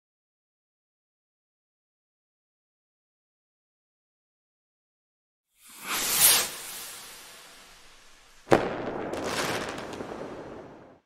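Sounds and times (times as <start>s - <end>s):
swish: 5.6s - 8.5s
crackling fizzing tail: 5.6s - 11.0s.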